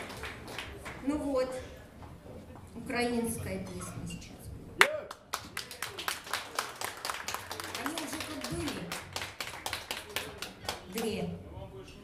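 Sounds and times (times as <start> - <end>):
small audience clapping: 0.0 - 1.2, 4.8 - 11.2.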